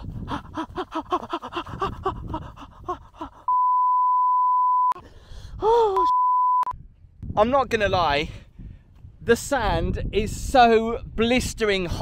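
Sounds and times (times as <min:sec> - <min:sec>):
censor bleep: 0:03.5 - 0:05.0, 0:06.0 - 0:06.8.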